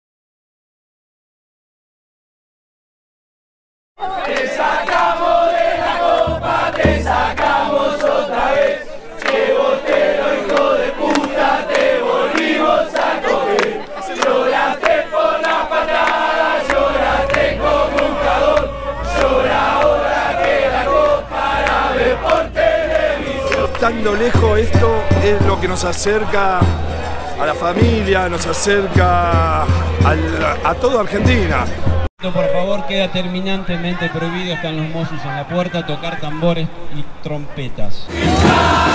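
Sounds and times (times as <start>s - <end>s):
crowd singing a chant: 4.0s - 32.1s, 38.1s - 38.9s.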